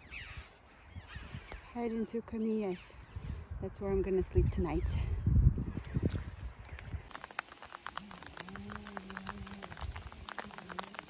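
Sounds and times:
light ticks: 6.8s - 11.0s.

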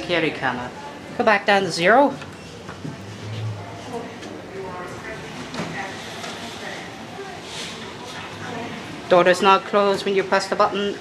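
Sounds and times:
people talking: 0.0s - 11.0s
shop hubbub: 0.0s - 11.0s.

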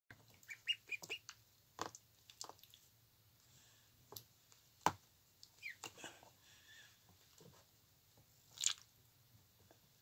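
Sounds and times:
ducklings peeping: 0.3s - 1.4s, 5.5s - 6.0s.

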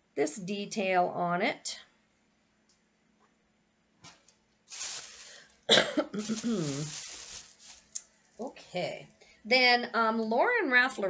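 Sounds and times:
woman coughing: 5.7s - 6.9s.

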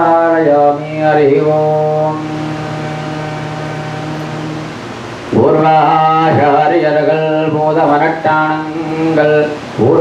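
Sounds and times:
background hiss: 0.0s - 10.0s
steady low hum: 0.0s - 10.0s.

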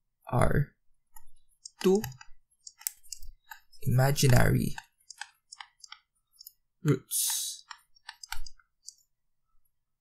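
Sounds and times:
stylus tapping on tablet: 1.1s - 6.6s, 7.2s - 9.0s.

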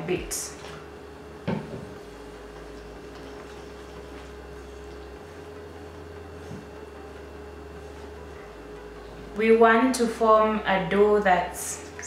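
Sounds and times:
low electrical hum: 0.0s - 12.0s
hands mixing flour in a bowl: 2.0s - 9.0s.

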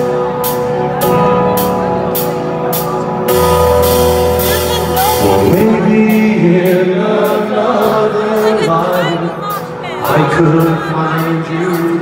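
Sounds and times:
deep bass: 0.0s - 12.0s
live rock band playing: 0.0s - 12.0s.

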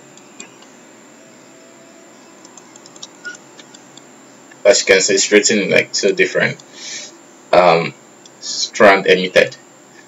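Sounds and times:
low room hiss: 0.0s - 10.0s
computer mouse clicks: 2.4s - 4.1s.

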